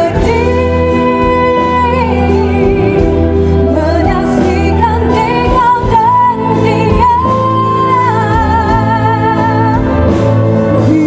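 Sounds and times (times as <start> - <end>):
band playing: 0.0 - 11.0
woman singing pop ballad: 0.0 - 11.0.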